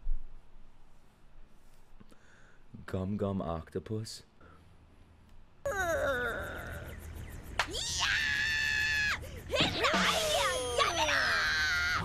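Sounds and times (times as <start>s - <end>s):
cartoonish wailing voice: 7.7s - 12.0s
female high-pitched scream: 7.7s - 12.0s.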